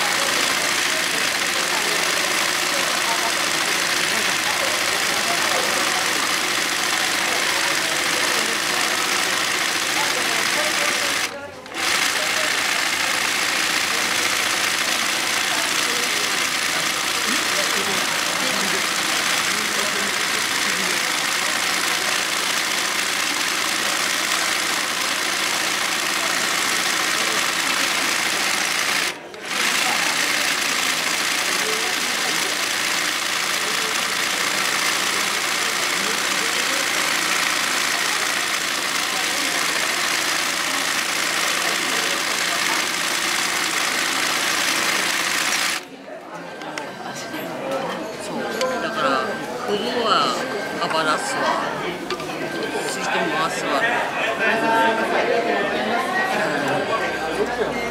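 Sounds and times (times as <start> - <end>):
sewing machine running fast: 0.0 - 45.9.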